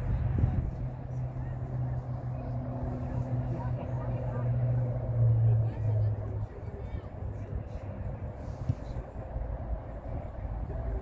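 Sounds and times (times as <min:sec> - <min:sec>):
distant indistinct voices: 0:00.0 - 0:11.0.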